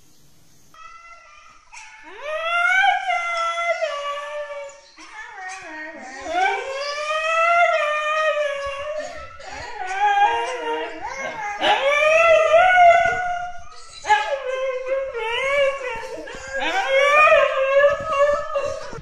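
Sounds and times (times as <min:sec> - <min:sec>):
dog howling: 0:02.0 - 0:19.0.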